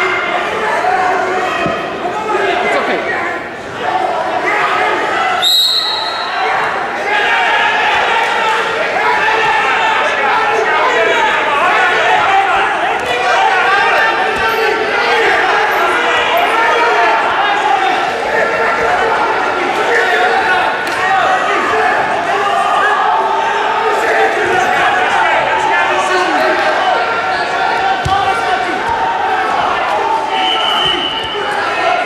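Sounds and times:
spectators shouting in echoing hall: 0:00.0 - 0:32.0
referee's whistle: 0:05.4 - 0:06.3, 0:30.3 - 0:31.6.

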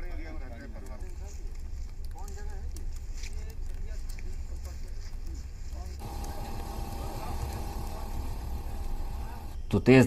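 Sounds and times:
low rumble with faint hum: 0:05.3 - 0:09.6.

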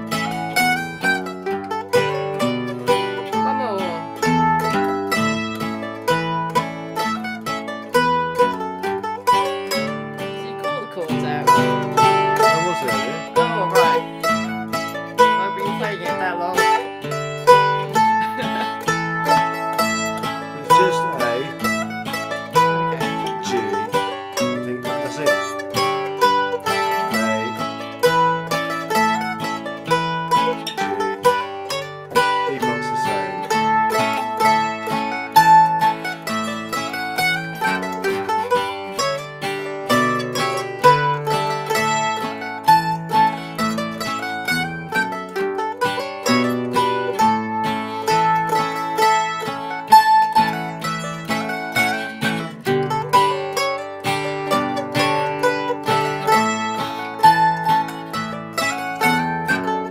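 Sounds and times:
acoustic guitar chords: 0:00.0 - 0:59.9
mandolin melody: 0:00.0 - 0:59.9.

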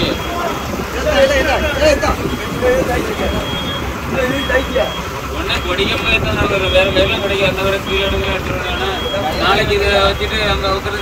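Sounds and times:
boat engine running: 0:00.0 - 0:11.0
men calling out: 0:00.0 - 0:11.0.

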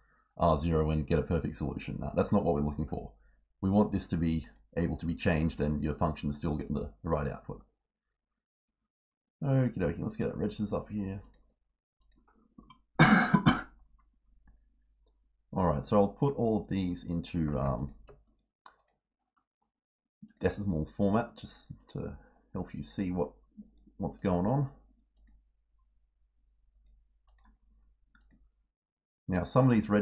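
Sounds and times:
person coughing: 0:13.0 - 0:13.8
faint computer mouse clicks: 0:17.7 - 0:19.0, 0:25.2 - 0:25.4, 0:26.7 - 0:27.6, 0:28.2 - 0:28.4.

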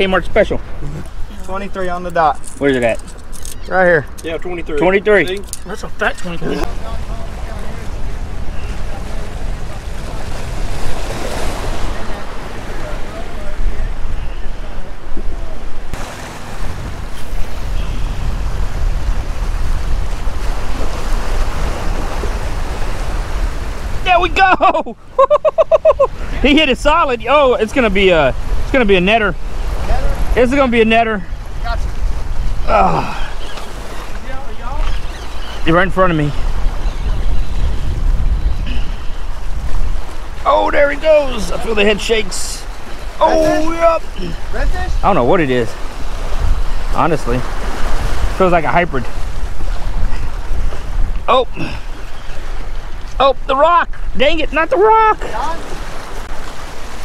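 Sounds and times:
wind buffeting microphone: 0:00.0 - 0:57.0
surf splashing against rocks: 0:04.9 - 0:57.0.

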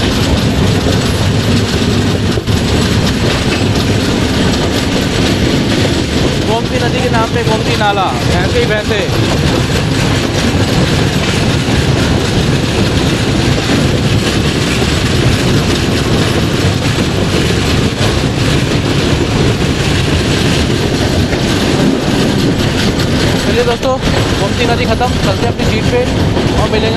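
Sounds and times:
train wheels rumbling on rails: 0:00.0 - 0:26.9.

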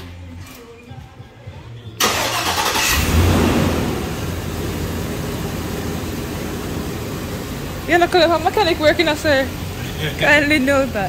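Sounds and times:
car engine starting and idling: 0:02.0 - 0:11.0.

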